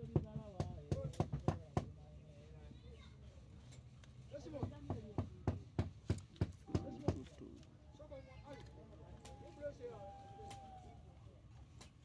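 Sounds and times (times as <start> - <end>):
sharp knocks: 4.6 - 7.3
faint voices: 6.6 - 12.0.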